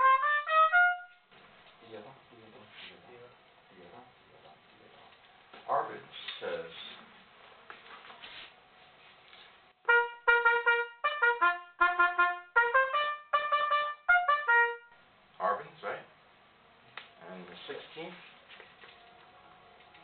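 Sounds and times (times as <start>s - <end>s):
trumpet playing short notes: 0.0s - 1.3s, 9.8s - 15.0s.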